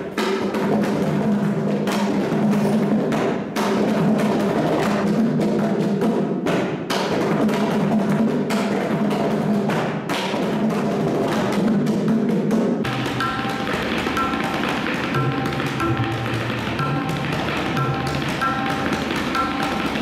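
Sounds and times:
barrel drums played by hand: 0.0 - 20.0.

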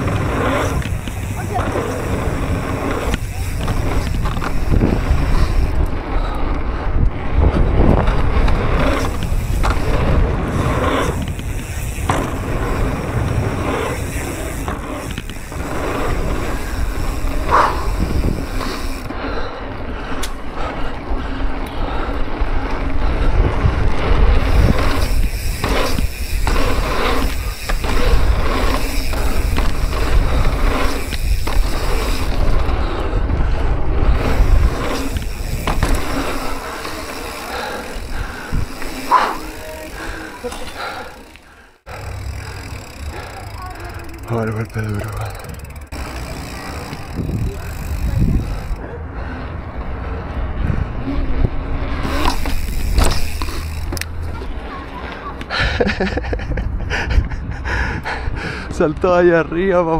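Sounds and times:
wind rushing over microphone: 0.0 - 40.4, 46.3 - 48.8, 49.5 - 53.9, 55.7 - 59.6
bike clicks and rattles: 0.0 - 59.9
knobby tyres rolling on dirt: 0.0 - 59.9.

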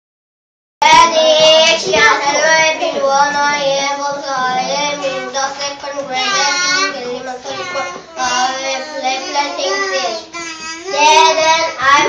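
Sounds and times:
child singing: 0.8 - 12.0.

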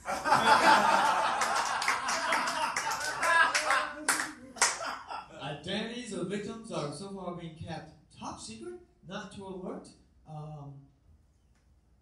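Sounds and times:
hand claps: 1.2 - 4.9.

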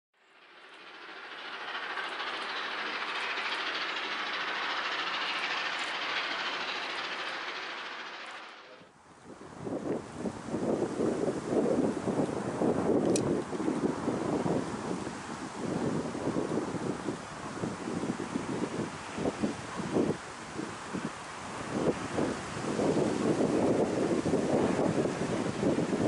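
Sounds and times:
steam locomotive rushing: 0.2 - 26.0
wind buffeting microphone: 9.1 - 26.0.

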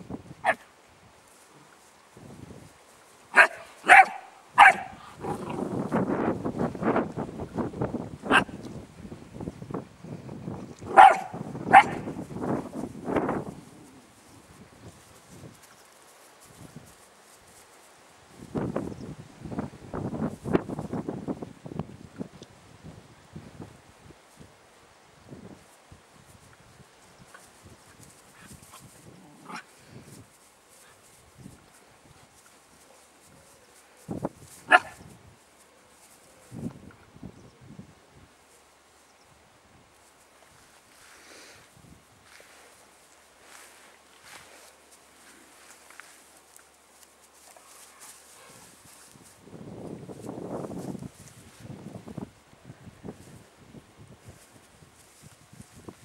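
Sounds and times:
puppy barking: 3.3 - 5.5, 10.9 - 12.1, 34.7 - 35.0.

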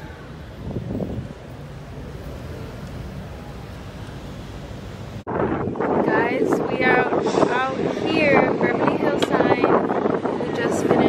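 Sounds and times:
low traffic rumble: 0.0 - 11.0
wind buffeting microphone: 0.0 - 11.0
people's voices: 5.9 - 11.0.

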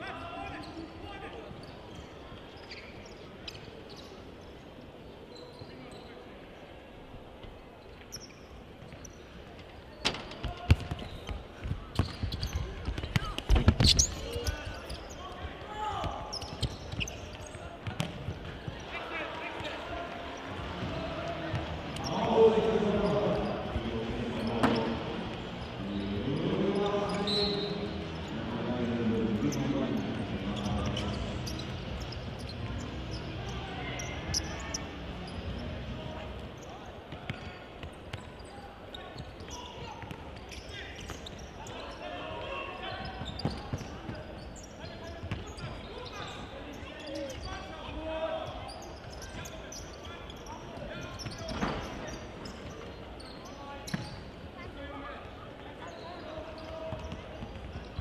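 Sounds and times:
ball kicks echoing in hall: 10.0 - 25.7, 35.3 - 41.8, 56.5 - 58.0.

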